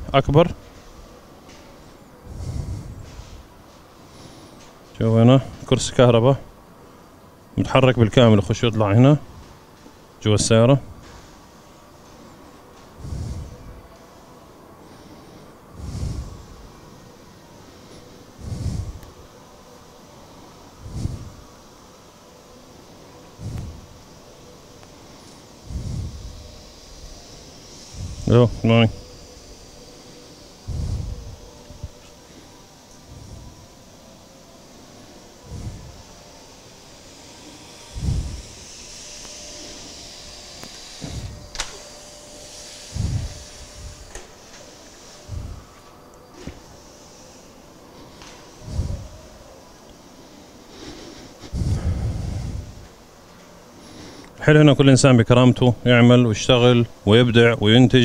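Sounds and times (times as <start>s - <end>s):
low background hum: 0.0s - 58.0s
vacuum cleaner whine: 0.0s - 58.0s
breath blowing on microphone: 1.8s - 5.6s, 12.8s - 14.1s, 14.7s - 19.6s, 20.3s - 21.6s, 22.5s - 24.2s, 25.0s - 53.0s.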